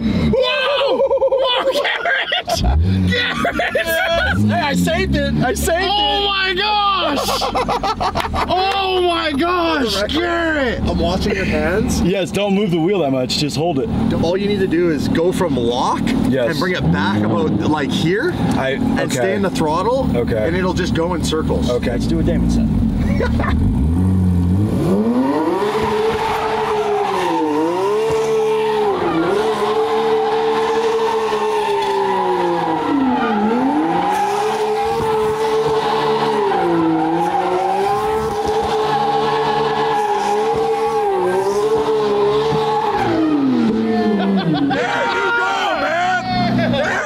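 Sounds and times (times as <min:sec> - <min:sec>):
voices: 0:00.3 - 0:23.6, 0:42.2 - 0:47.0
car engine at high revs: 0:02.4 - 0:44.8
tyres squealing: 0:25.0 - 0:43.6.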